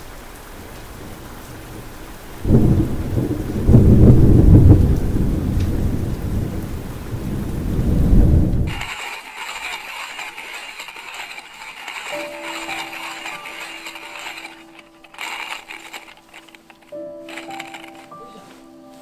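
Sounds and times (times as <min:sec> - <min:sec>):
rain falling: 0:00.0 - 0:08.7
deep rumble of thunder: 0:02.4 - 0:08.7.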